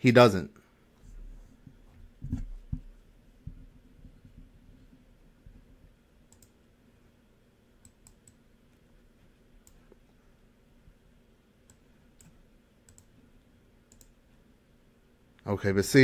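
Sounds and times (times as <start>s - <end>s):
computer mouse clicks: 6.3s - 6.6s, 7.8s - 8.8s, 9.6s - 10.0s, 11.6s - 13.2s, 13.9s - 14.2s.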